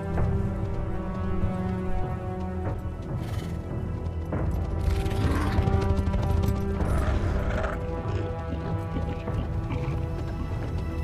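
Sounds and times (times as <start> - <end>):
hoof footfalls on rough ground: 0.0 - 11.0
orchestral film music: 0.0 - 11.0.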